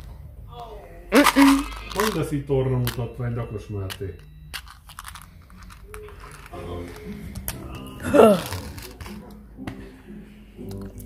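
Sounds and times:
rustling and crinkling: 0:01.2 - 0:03.0, 0:04.5 - 0:09.4
person's wordless vocal sounds: 0:06.5 - 0:09.0
person crying out: 0:07.8 - 0:08.7.

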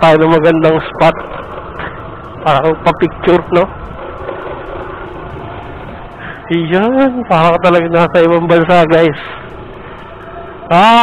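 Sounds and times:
motorcycle engine cruising: 0:00.0 - 0:11.0
road noise: 0:00.0 - 0:11.0.

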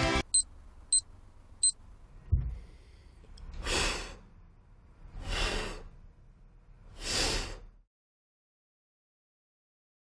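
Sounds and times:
soft low thump: 0:02.3 - 0:02.7.

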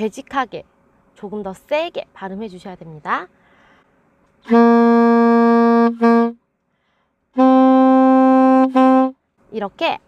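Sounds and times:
alto saxophone playing: 0:04.4 - 0:06.4, 0:07.4 - 0:09.2.

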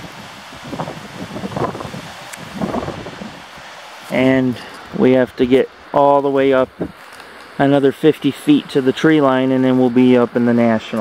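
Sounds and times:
wind buffeting microphone: 0:00.0 - 0:05.6, 0:06.4 - 0:07.0.

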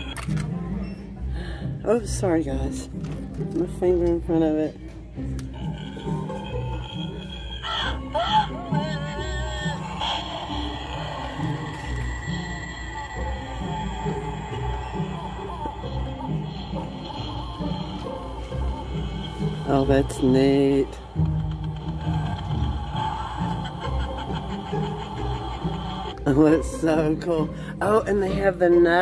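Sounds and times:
background music with steady beat: 0:00.0 - 0:29.0
eerie wavering gliding tones: 0:05.3 - 0:27.3.

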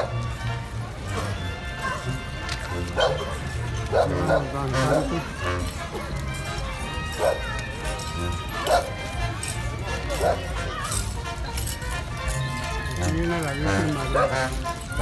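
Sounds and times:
crowd voices: 0:00.0 - 0:15.0
street procession music: 0:00.0 - 0:15.0
dog barking: 0:02.9 - 0:05.1, 0:07.2 - 0:07.4, 0:08.6 - 0:08.9, 0:10.1 - 0:10.5, 0:14.0 - 0:14.5.

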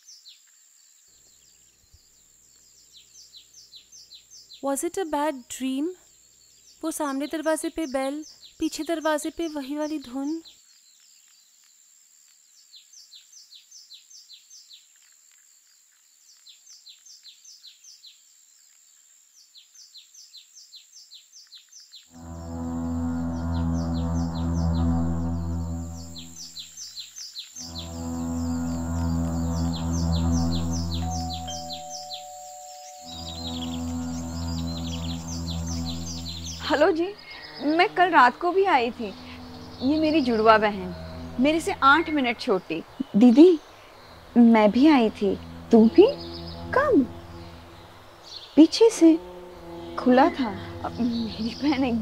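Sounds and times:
loud low droning note: 0:22.2 - 0:26.7, 0:27.6 - 0:52.0
high rhythmic chirping: 0:27.6 - 0:52.0.

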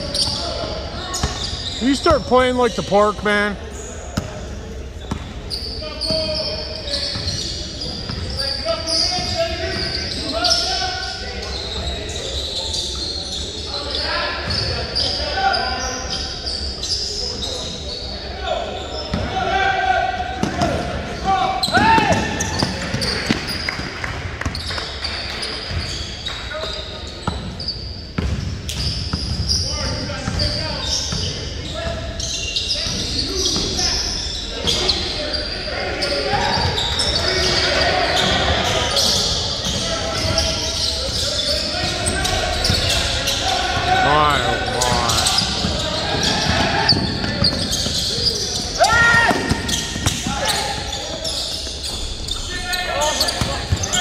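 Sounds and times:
players calling out: 0:00.0 - 0:23.6, 0:29.4 - 0:54.0.

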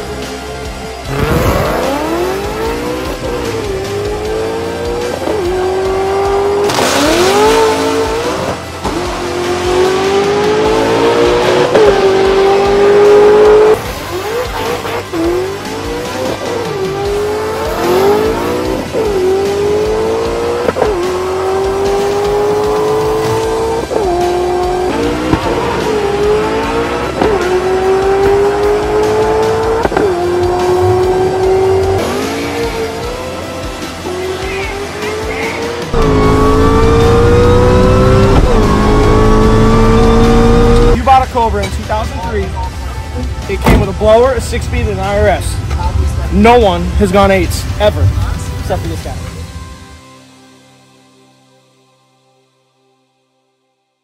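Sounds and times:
supercharged car engine at full throttle: 0:00.0 - 0:41.0.

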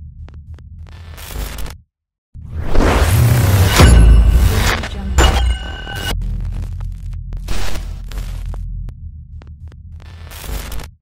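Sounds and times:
sharp digital clicks: 0:03.4 - 0:06.2
burst of static noise: 0:07.5 - 0:08.4.

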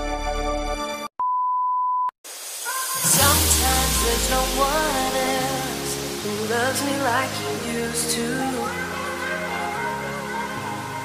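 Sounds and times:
electronic intro music: 0:02.3 - 0:10.4.

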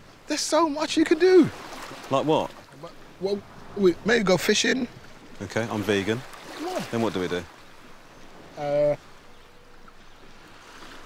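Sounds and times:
sea lapping at shore: 0:00.0 - 0:11.0.

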